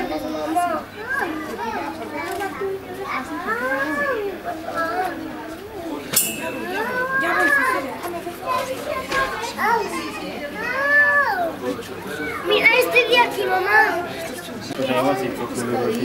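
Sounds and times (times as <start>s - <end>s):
children chattering and calling out: 0.0s - 16.0s.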